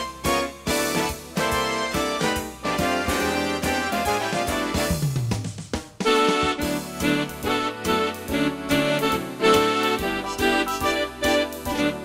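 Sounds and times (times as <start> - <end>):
organ playing a melody: 0.0 - 5.1, 6.0 - 12.0
bass and drum beats: 0.0 - 12.0.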